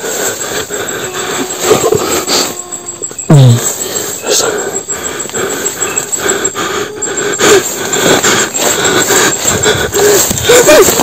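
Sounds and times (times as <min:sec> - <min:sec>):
faint steady hum: 0:00.0 - 0:10.8
leaves and undergrowth rustling: 0:00.0 - 0:11.0.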